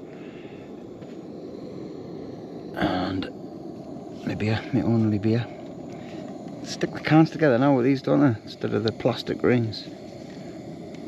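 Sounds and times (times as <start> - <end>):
camping stove burner hissing: 0.0 - 11.0.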